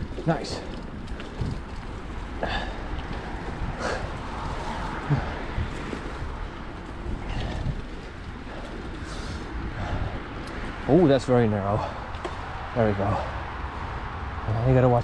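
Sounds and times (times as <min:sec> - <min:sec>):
bike knocking and rattling: 0:00.0 - 0:15.0
bike tyre and wind noise: 0:00.0 - 0:15.0.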